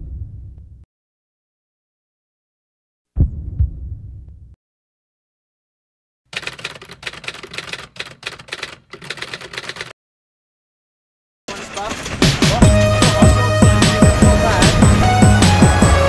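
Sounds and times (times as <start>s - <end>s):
deep low boom: 0.0s - 0.8s, 3.2s - 4.6s
typewriter key clicks: 6.4s - 9.9s.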